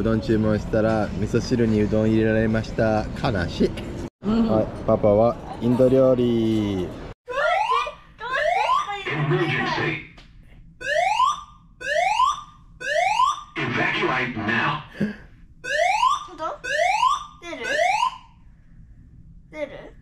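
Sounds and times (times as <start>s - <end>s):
whooping alarm tones: 7.3s - 10.0s, 10.8s - 14.8s, 15.6s - 18.4s
spoken announcement: 8.2s - 10.1s, 13.6s - 14.9s.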